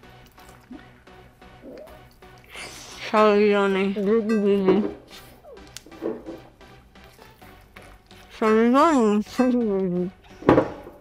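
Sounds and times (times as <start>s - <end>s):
small mouth sounds: 0.4s - 3.0s.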